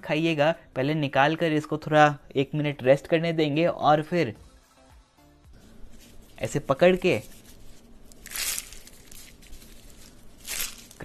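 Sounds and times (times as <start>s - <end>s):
flatbread crackling crunch: 7.1s - 11.0s.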